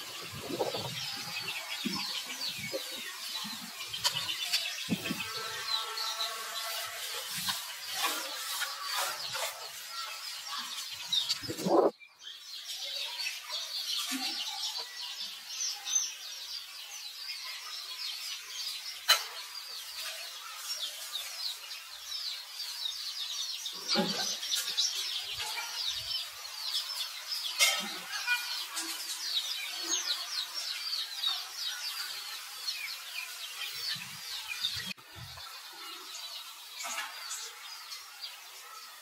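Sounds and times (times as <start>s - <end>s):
high-pitched chirping calls: 0.0s - 39.0s
steady outdoor hiss: 0.0s - 39.0s.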